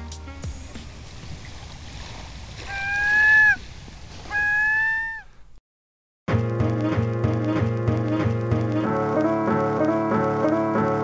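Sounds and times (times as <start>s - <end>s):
water-like noise: 0.4s - 4.9s
long pitched calls: 2.6s - 5.4s.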